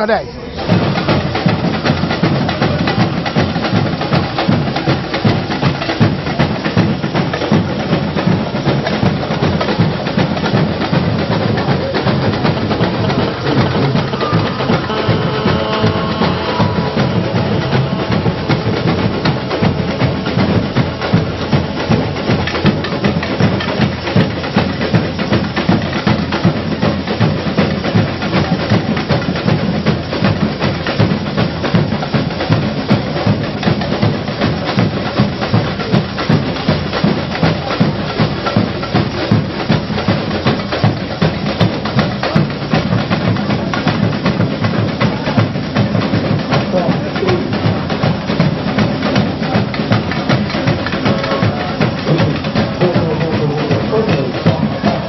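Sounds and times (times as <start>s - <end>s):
massed samba drums and percussion: 0.0s - 55.0s.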